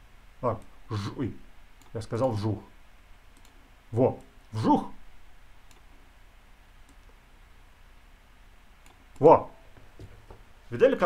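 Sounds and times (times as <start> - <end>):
faint mouse click: 3.3 - 3.6, 5.6 - 5.9, 6.8 - 7.2.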